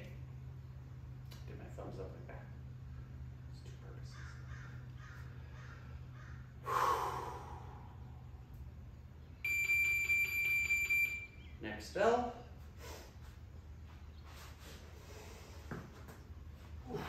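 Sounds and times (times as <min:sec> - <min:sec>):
loud breath-like burst: 0:06.6 - 0:07.9
electronic timer beep: 0:09.4 - 0:11.5.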